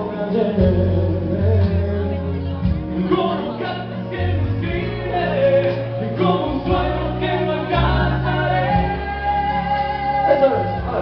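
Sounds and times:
backing track with bass line: 0.0s - 11.0s
people singing slow song: 3.0s - 11.0s.

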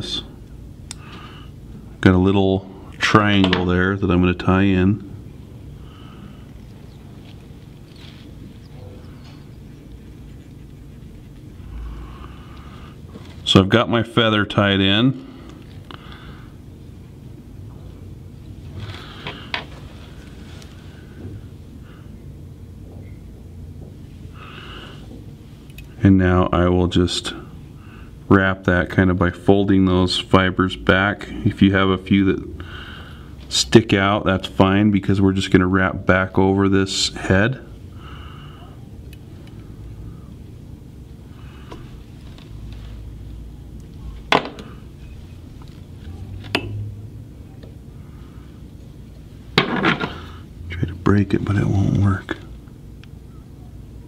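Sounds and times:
steady low hum: 0.0s - 54.0s
soft breaths: 5.4s - 13.5s, 15.2s - 16.7s, 24.0s - 25.7s, 32.6s - 33.5s, 37.6s - 46.4s
handling of fly-tying materials: 6.5s - 11.7s, 41.6s - 44.3s.

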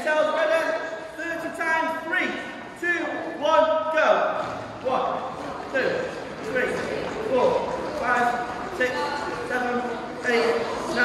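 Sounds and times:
man counting aloud: 0.0s - 11.0s.

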